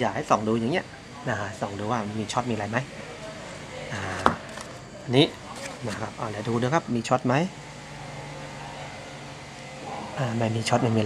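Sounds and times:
man speaking: 0:00.0 - 0:07.6, 0:09.9 - 0:11.0.

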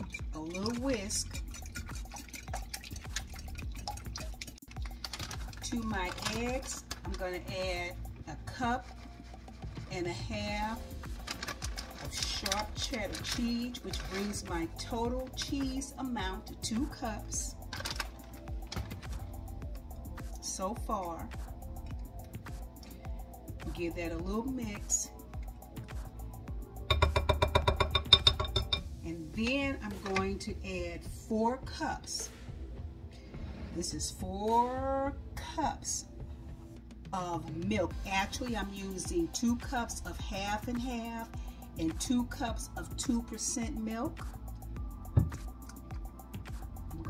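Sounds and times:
whisk clicking against glass bowl: 0:00.0 - 0:07.2, 0:26.9 - 0:28.8
eggs splashing: 0:00.0 - 0:08.2, 0:08.8 - 0:19.8.

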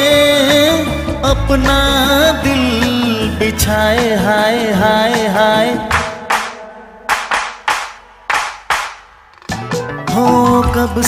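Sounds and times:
sharp handclaps: 0:05.9 - 0:09.1.

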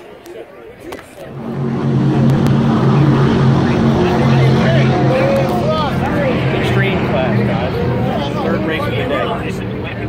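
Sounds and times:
people's voices: 0:00.0 - 0:10.0
boat engines droning: 0:01.1 - 0:10.0
helicopters flying: 0:01.2 - 0:10.0.

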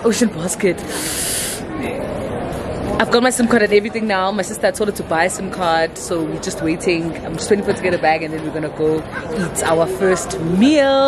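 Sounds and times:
steady background noise: 0:00.0 - 0:11.0
loud hiss: 0:00.9 - 0:01.6.

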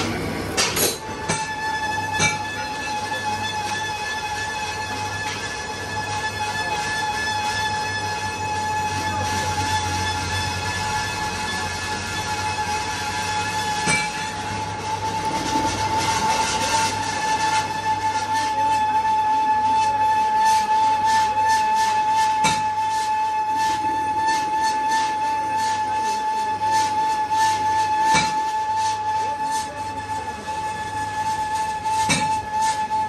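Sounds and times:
lathe cutting tool whine: 0:00.0 - 0:33.0.

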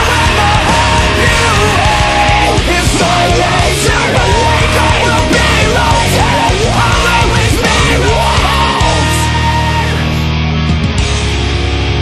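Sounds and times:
shouted backing vocal: 0:00.0 - 0:10.2
sung lead vocal: 0:00.0 - 0:10.4
distorted electric guitars: 0:00.0 - 0:12.0
drums: 0:00.0 - 0:12.0.

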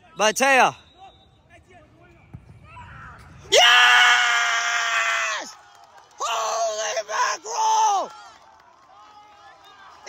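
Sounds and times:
soccer ball kicked thump: 0:02.3 - 0:02.6.

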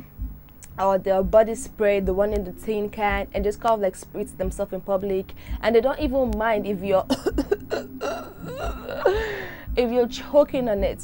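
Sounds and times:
woman making vocal sounds: 0:05.5 - 0:10.0.

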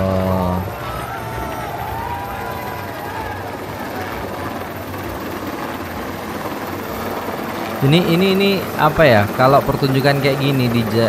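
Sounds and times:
helicopter flying overhead: 0:00.0 - 0:11.0.

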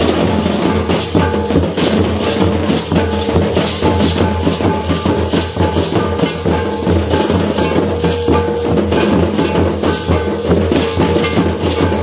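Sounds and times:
fast dense drumming: 0:00.0 - 0:12.0
rattling shaker percussion: 0:00.0 - 0:12.0.

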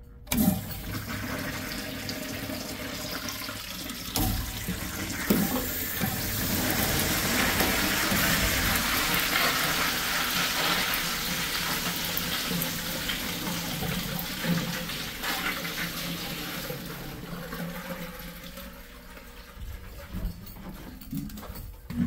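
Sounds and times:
urinal flushing: 0:00.3 - 0:22.0
water rushing down porcelain: 0:00.6 - 0:20.4.

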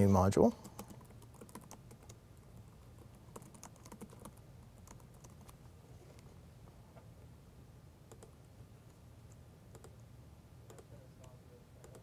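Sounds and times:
typing on computer keyboard: 0:00.6 - 0:05.6, 0:08.1 - 0:08.4, 0:09.3 - 0:10.0, 0:10.7 - 0:10.9, 0:11.8 - 0:12.0.

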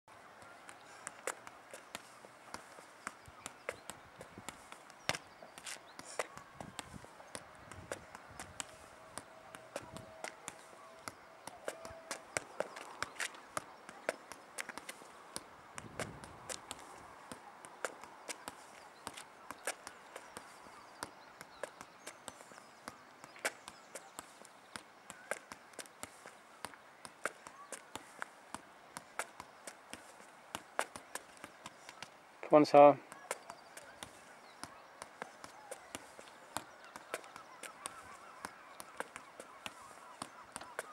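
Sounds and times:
ball taps on foot: 0:00.5 - 0:32.2, 0:33.1 - 0:40.9
shoe steps and scuffs on tarmac: 0:00.6 - 0:32.2, 0:33.1 - 0:40.9.

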